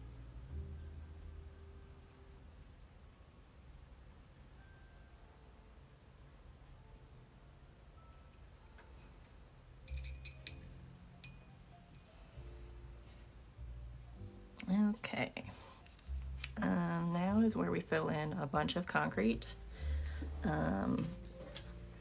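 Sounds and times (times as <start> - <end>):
soft background music: 0.0 - 22.0
bright ringing clinks: 9.8 - 12.2.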